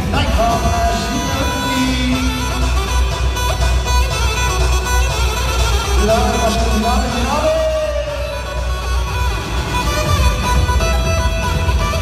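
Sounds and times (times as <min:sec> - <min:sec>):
amplified dance band playing: 0:00.0 - 0:12.0
heavy bass beat: 0:00.0 - 0:12.0.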